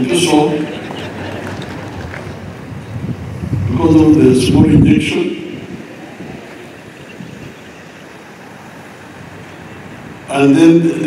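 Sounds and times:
open-air venue background noise: 0:00.0 - 0:11.0.

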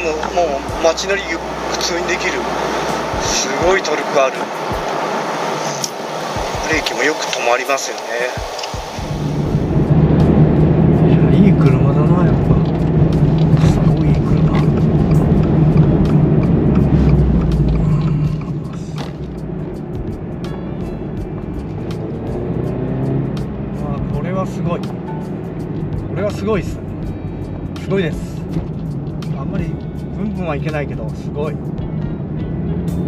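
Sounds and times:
background music: 0:00.0 - 0:33.0
car engine droning: 0:00.0 - 0:33.0.

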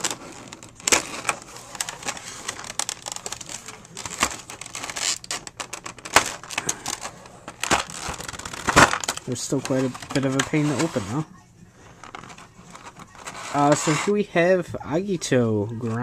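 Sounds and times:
plastic blister tray crackling: 0:00.0 - 0:14.6.

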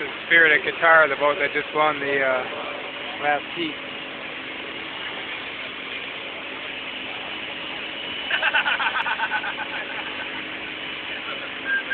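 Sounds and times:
crane engine running: 0:00.0 - 0:11.9
outdoor noise: 0:00.0 - 0:11.9.

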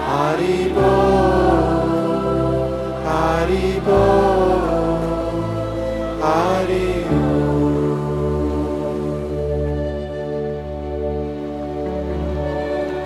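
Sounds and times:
sustained accompaniment chords: 0:00.0 - 0:13.0
man singing a mantra: 0:03.0 - 0:09.0.

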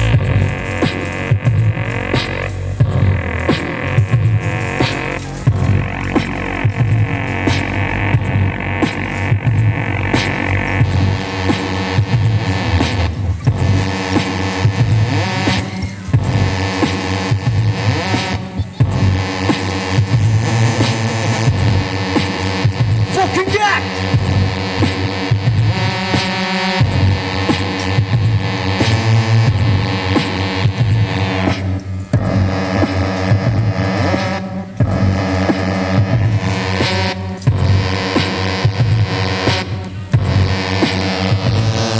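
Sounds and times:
deep throbbing synth bass: 0:00.0 - 0:41.9
electronic hip-hop music: 0:00.0 - 0:41.9
programmed drum beat: 0:00.0 - 0:41.9.

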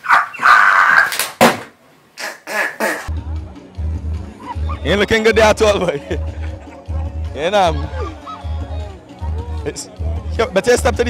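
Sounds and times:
man laughing hysterically: 0:04.4 - 0:08.8.

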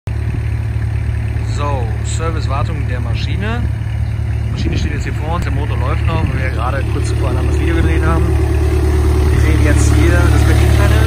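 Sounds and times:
crusher engine droning: 0:00.1 - 0:11.0
man's voice: 0:04.5 - 0:08.5, 0:09.2 - 0:11.0.

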